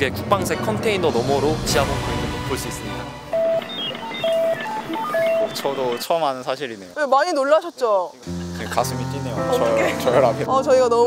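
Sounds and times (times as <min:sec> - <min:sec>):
electronic beeping tune: 0:01.6 - 0:06.4.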